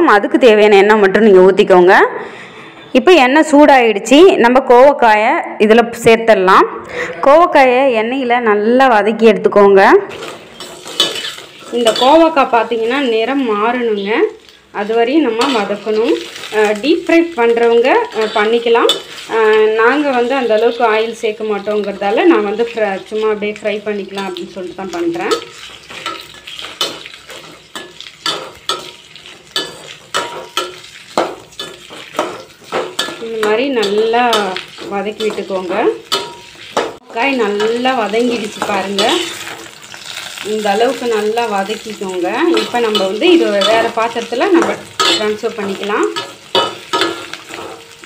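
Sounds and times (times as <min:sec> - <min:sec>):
low frying sizzle: 0:09.8 - 0:48.0
metal ladle scraping pan: 0:10.1 - 0:13.1, 0:13.9 - 0:23.3, 0:24.1 - 0:48.0
sharp metal clink: 0:45.0 - 0:45.4.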